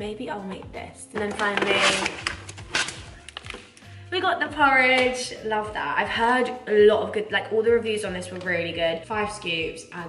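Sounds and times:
quiet music: 0:00.0 - 0:10.0
foil pouch rustling: 0:01.2 - 0:03.8.

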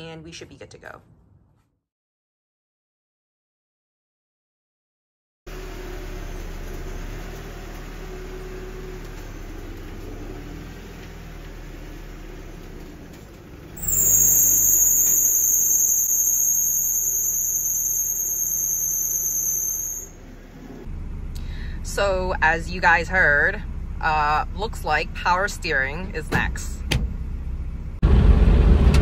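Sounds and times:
high-pitched power steering squeal: 0:13.8 - 0:20.9
car engine idling: 0:20.2 - 0:26.1.

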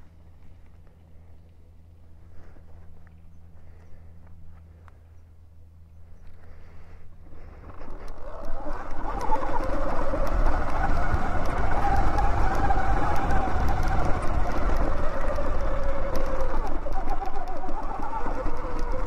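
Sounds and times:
wind: 0:00.0 - 0:19.0
electric motorbike motor whining: 0:06.2 - 0:19.0.

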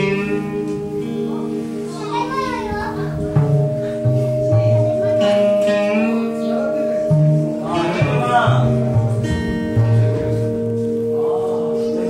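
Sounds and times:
low double bass notes: 0:00.0 - 0:12.0.

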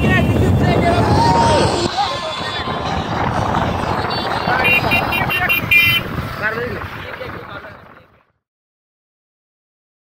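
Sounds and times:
motorcycle engines: 0:00.0 - 0:08.2
voices: 0:00.0 - 0:08.2
wind noise on microphone: 0:00.0 - 0:08.4.

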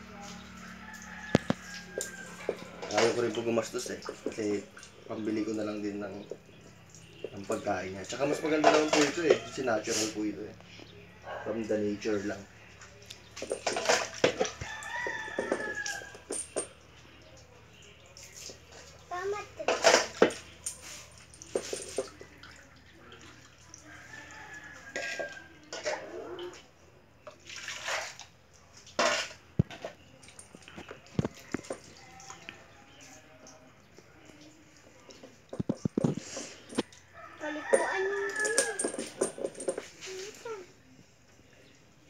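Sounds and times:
water splashing from a dipper: 0:12.6 - 0:26.5, 0:27.2 - 0:33.6.

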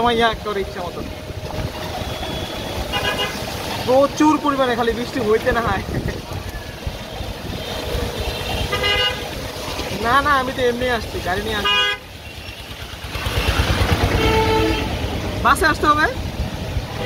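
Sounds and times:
auto-rickshaw ride rumble: 0:00.0 - 0:17.0
rain and wet tyres hissing: 0:00.0 - 0:17.0
vehicle horn toots: 0:02.0 - 0:03.5, 0:07.6 - 0:09.3, 0:11.6 - 0:12.0, 0:14.0 - 0:15.1.

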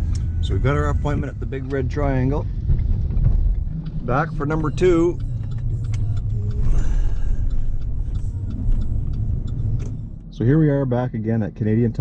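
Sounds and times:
engine and road rumble: 0:00.0 - 0:12.0
faint clicks: 0:03.0 - 0:10.0.

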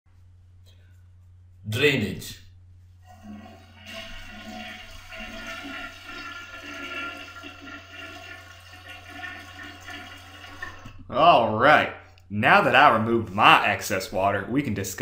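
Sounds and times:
toilet flushing: 0:03.0 - 0:11.1.

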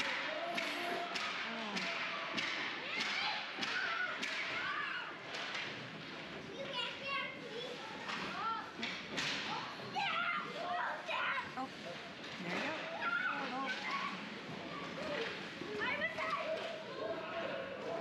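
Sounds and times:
hockey sticks and puck clacking: 0:00.1 - 0:04.7, 0:05.3 - 0:06.8
children shouting: 0:01.8 - 0:05.2.

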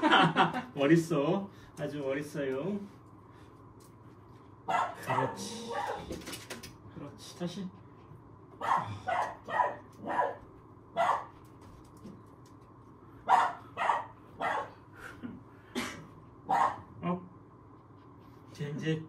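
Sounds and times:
puppy barking: 0:04.7 - 0:06.1, 0:08.6 - 0:11.4, 0:13.3 - 0:14.8, 0:16.5 - 0:16.9.

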